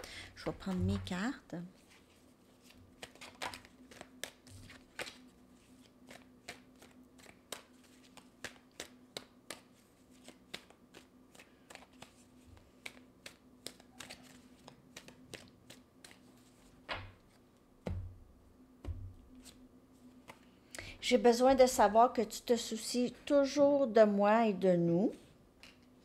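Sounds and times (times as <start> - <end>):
faint steady hum: 0.0 - 26.0
cards being shuffled: 0.4 - 17.5, 18.8 - 20.6.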